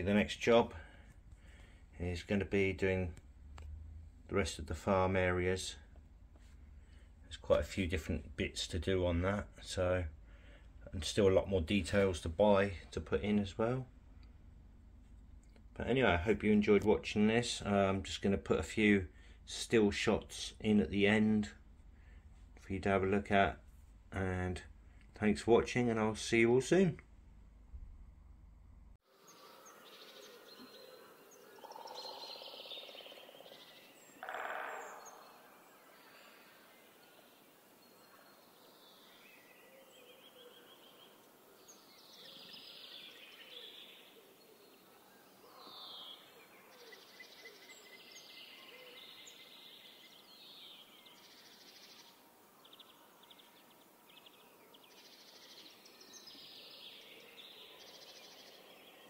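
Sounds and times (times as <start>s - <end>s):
birds chirping and singing: 29.2s - 59.0s.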